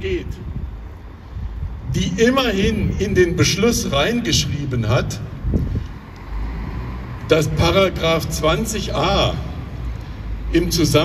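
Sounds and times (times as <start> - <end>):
bus nearby: 0.0 - 11.0
street traffic rumble: 0.0 - 11.0.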